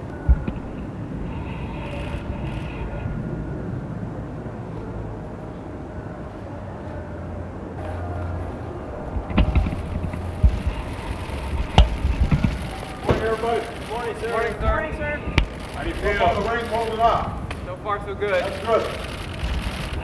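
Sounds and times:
distant traffic: 0.0s - 20.0s
wind: 0.0s - 20.0s
sharp clicks and knocks: 9.2s - 13.7s.

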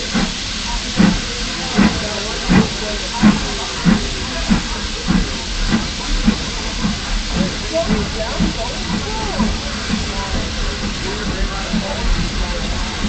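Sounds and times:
constant steam hiss: 0.0s - 13.0s
steam locomotive chuffing: 0.0s - 13.0s.

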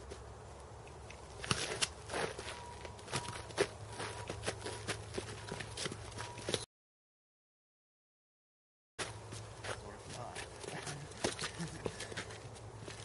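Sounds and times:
feet scuffing and stamping on dirt: 1.1s - 6.6s, 9.0s - 13.0s.

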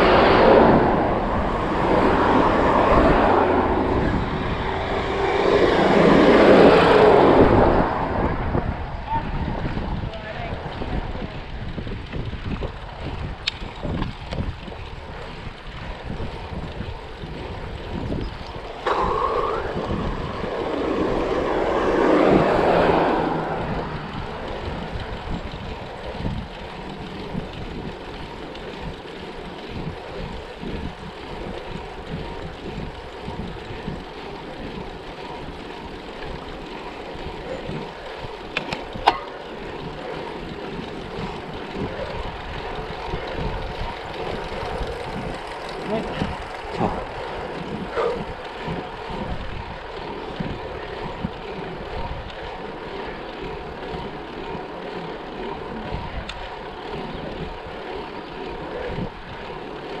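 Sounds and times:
wind buffeting microphone: 0.0s - 60.0s.

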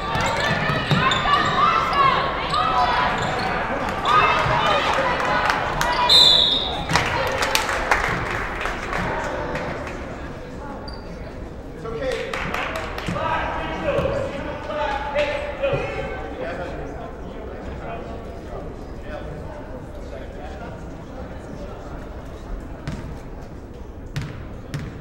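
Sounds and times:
players and spectators shouting: 0.0s - 7.4s
referee's whistle blast: 6.0s - 6.9s
basketball bouncing on floor: 24.2s - 25.0s.

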